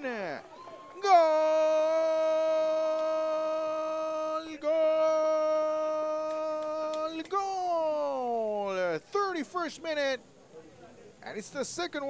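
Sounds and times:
man shouting long goal call: 0.0s - 8.8s.

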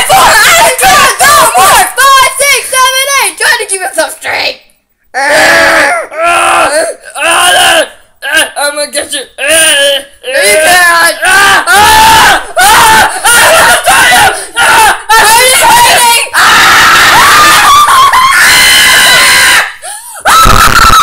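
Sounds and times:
girls screaming: 11.3s - 21.0s.

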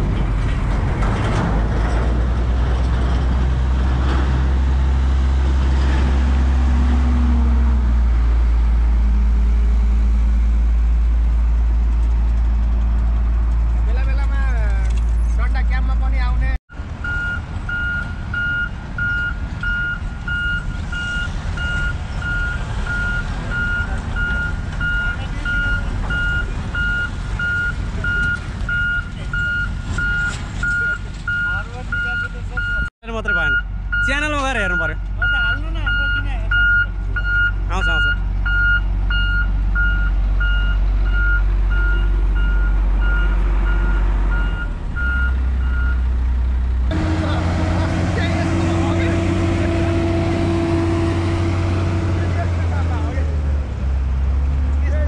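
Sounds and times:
diesel engine running: 0.0s - 55.0s
reversing alarm beeping: 17.0s - 46.0s.

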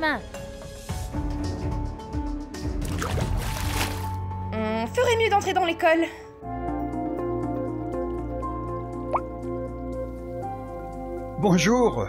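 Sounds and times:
dark ambient music: 0.3s - 12.0s
water dripping: 7.7s - 9.5s.

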